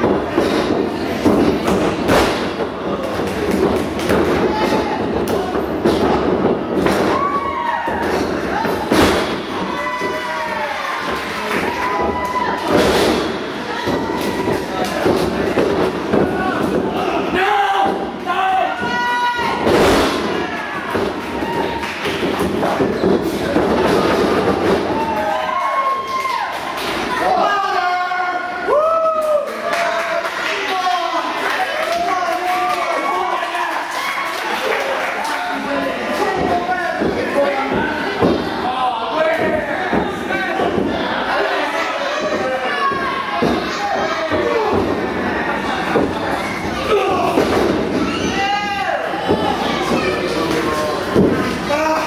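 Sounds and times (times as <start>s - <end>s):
noisy hall: 0.0s - 52.0s
spectators shouting: 6.8s - 22.2s.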